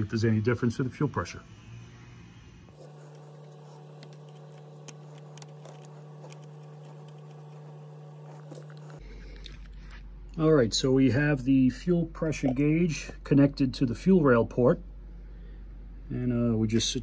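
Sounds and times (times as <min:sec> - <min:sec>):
steady low hum: 0:00.0 - 0:17.0
faint clicks and handling noises: 0:02.8 - 0:09.7.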